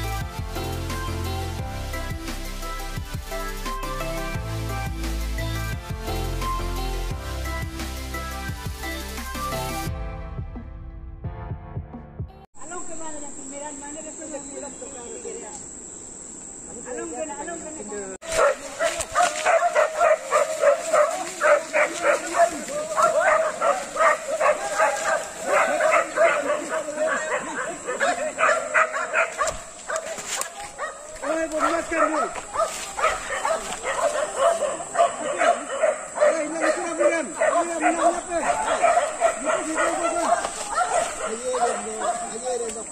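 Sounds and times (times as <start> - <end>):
men shouting and hollering: 18.8 - 29.5, 30.1 - 42.4.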